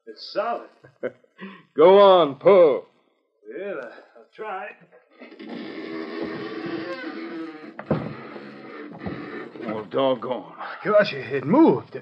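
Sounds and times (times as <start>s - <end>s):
heavy bunk straining on pivot: 5.2s - 11.7s.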